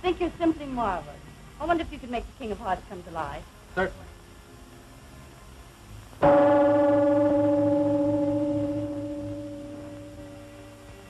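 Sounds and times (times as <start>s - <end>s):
gong-like tone ringing: 6.2s - 11.0s.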